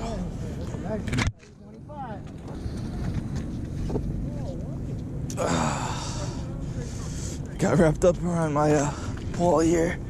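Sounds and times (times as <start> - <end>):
low outdoor rumble: 0.0 - 10.0
people talking: 3.9 - 10.0.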